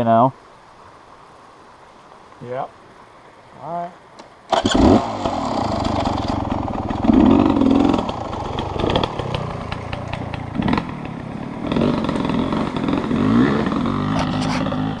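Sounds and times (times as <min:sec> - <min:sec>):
dirt bike engine revving: 0:04.5 - 0:15.0.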